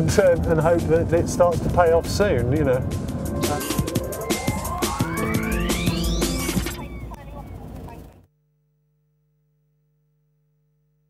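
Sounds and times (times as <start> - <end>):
rising synth sweep: 0.7 - 7.4.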